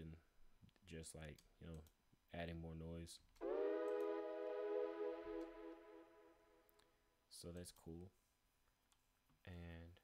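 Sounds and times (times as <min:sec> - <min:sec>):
held synth note: 0:03.4 - 0:06.7.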